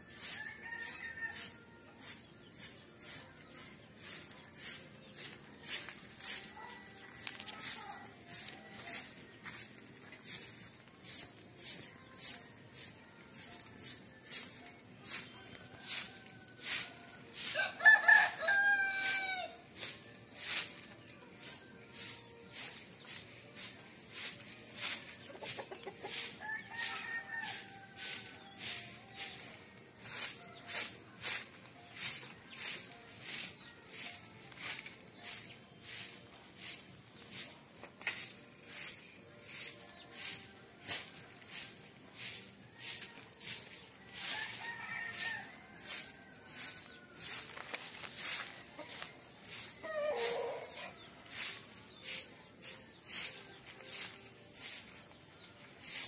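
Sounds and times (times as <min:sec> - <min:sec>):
rooster crowing: 0:17.5 - 0:19.5.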